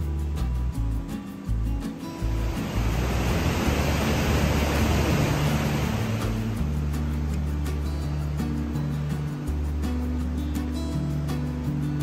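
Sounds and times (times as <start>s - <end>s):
background music: 0.0s - 12.0s
rushing water roar: 0.3s - 12.0s.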